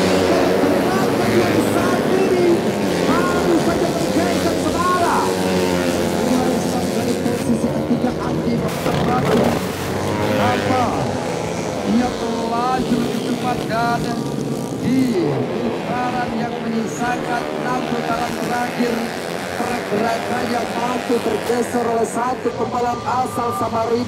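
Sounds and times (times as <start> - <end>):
motorcycle engines revving: 0.0 - 24.0.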